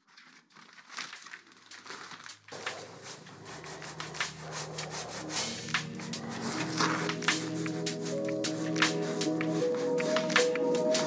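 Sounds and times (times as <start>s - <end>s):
paintbrush scrubbing canvas: 2.5s - 10.5s
quiet background music: 2.6s - 11.0s.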